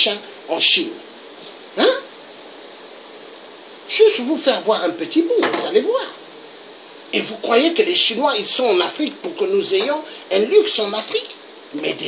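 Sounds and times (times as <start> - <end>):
low room hiss: 0.0 - 12.0.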